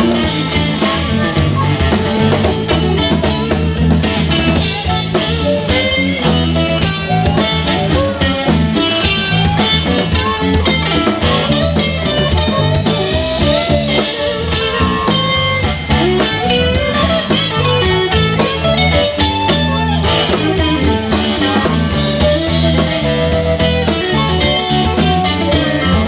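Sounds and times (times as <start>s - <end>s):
drum kit: 0.0s - 26.0s
electric bass: 0.0s - 26.0s
electric guitar: 0.0s - 26.0s
harmonica: 0.0s - 26.0s.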